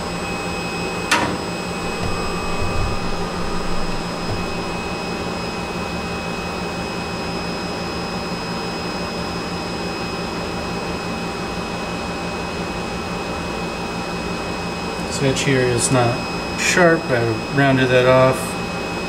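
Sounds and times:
machine hum with high whine: 0.0s - 19.0s
machine bumps: 1.1s - 5.2s.

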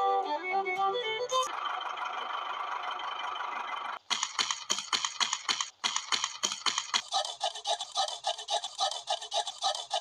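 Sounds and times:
handsaw cutting wood: 7.0s - 10.0s.

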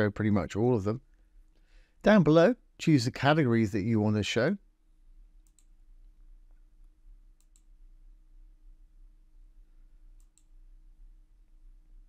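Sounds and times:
low electrical hum: 0.0s - 12.0s
computer mouse clicks: 5.4s - 5.8s, 7.4s - 7.7s, 10.1s - 10.6s.

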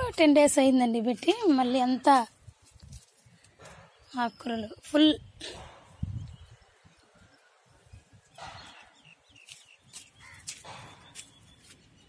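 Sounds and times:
bird cawing: 10.2s - 10.5s.

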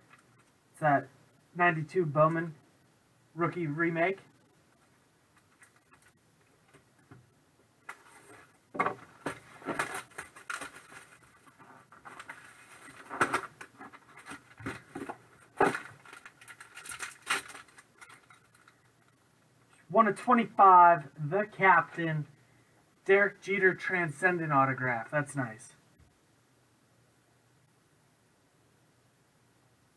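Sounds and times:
packaging crinkling and rustling: 7.9s - 18.9s.

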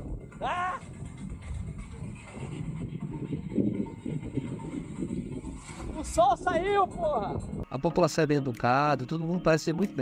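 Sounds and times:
motorboat engine rumble: 0.0s - 6.2s
wind buffeting microphone: 0.0s - 7.7s.

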